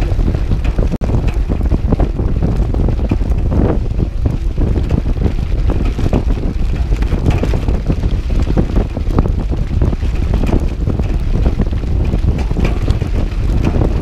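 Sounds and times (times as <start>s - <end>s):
bike clicking and rattling: 0.0s - 14.0s
low rumble: 0.0s - 14.0s
wind buffeting microphone: 0.0s - 14.0s.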